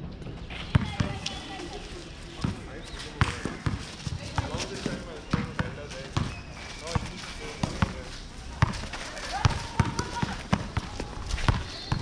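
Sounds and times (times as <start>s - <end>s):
basketball bouncing on concrete: 0.7s - 1.5s, 2.4s - 12.0s.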